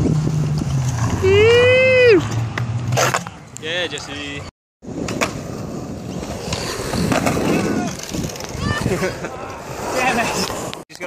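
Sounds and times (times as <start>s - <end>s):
skateboard wheels rolling on concrete: 0.0s - 11.0s.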